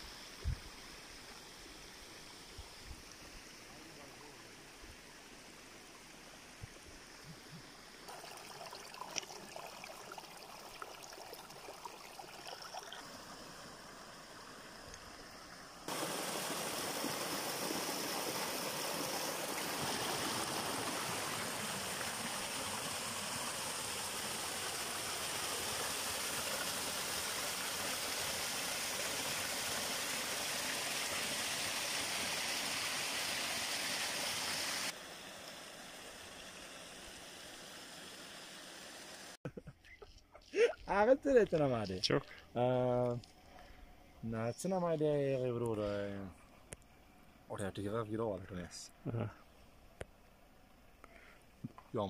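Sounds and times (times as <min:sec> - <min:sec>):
waterfall rushing over rocks: 0:15.9 - 0:36.3
quiet rushing hiss: 0:40.6 - 0:52.0.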